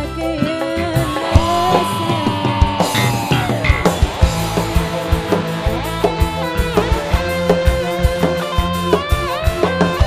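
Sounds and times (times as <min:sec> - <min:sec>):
band playing through pa system: 0:00.4 - 0:09.6.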